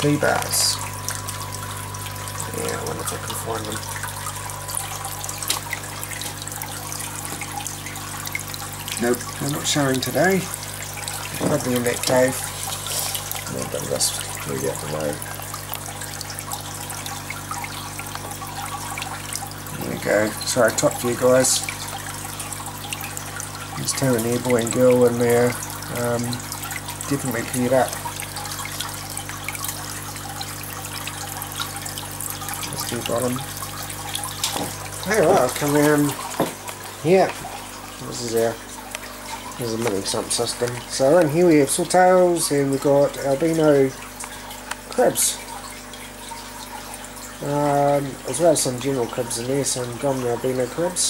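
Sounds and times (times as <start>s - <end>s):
water drips: 0.0s - 51.0s
water trickling and splashing: 0.0s - 51.0s.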